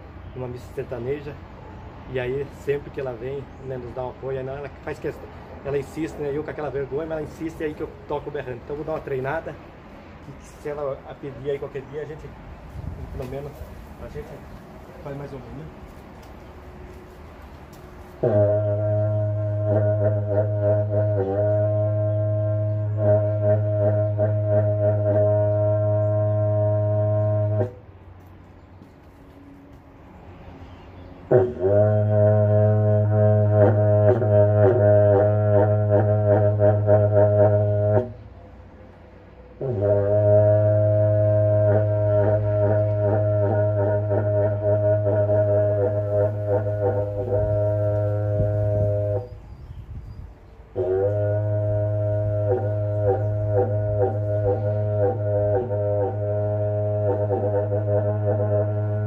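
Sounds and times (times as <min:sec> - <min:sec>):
horn blown in low buzzing blasts: 0:16.7 - 0:28.4, 0:31.2 - 0:59.0.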